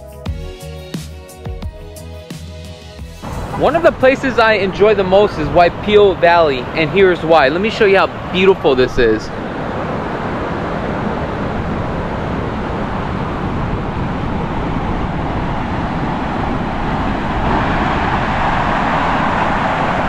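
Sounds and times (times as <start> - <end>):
wind: 3.1 - 20.0
ocean surf breaking: 3.2 - 20.0.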